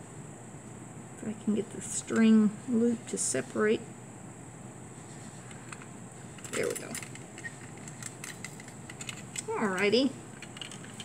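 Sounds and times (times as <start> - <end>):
light clicks and rattles: 5.4 - 11.0.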